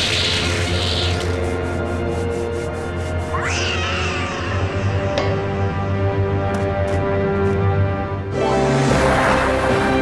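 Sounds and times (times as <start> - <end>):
cartoon background music: 0.0 - 10.0
cartoon cat cry: 3.4 - 5.2.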